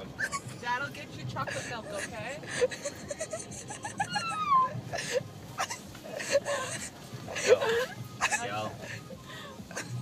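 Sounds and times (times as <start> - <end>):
woman laughing and crying: 0.0 - 0.8, 1.4 - 10.0.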